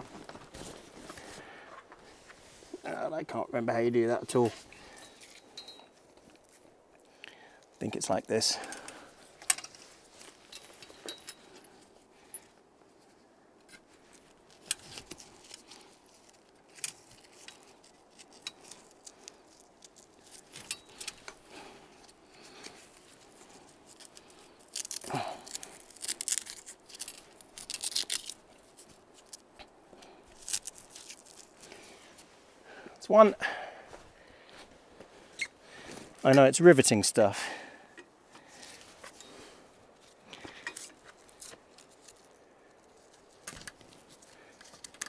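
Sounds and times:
fabric rustling: 0.0 - 2.8.

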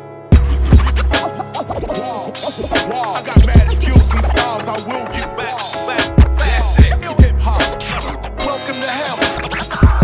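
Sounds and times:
sampled piano: 0.0 - 9.9
turntable scratching: 0.4 - 10.0
hip hop drums kick and snare: 2.6 - 7.8, 9.8 - 10.0.

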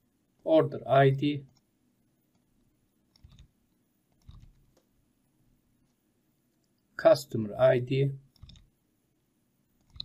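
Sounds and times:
computer mouse clicks: 3.1 - 3.5, 4.1 - 4.9, 8.3 - 8.7, 9.8 - 10.0.

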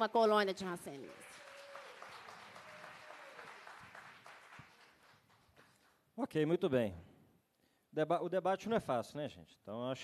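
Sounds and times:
faint audience applause: 0.1 - 6.0.

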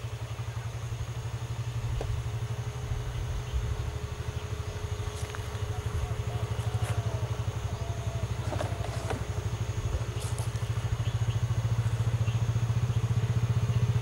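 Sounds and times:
vehicle engine idling: 0.0 - 14.0.

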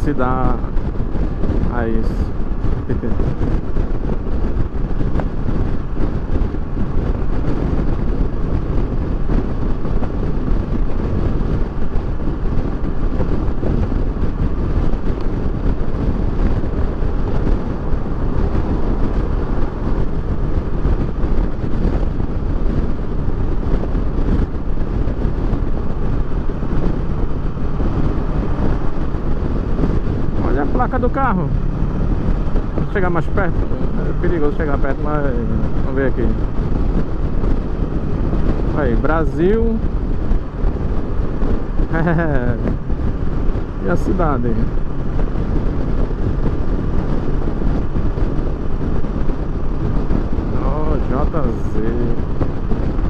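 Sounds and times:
motorcycle engine cruising: 0.0 - 53.0
wind and road noise: 0.0 - 53.0.

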